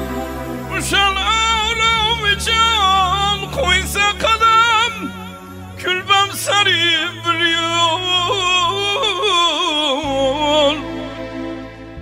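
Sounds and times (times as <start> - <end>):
ornamented wavering melody: 0.0 - 6.0
low keyboard bass drone: 0.0 - 12.0.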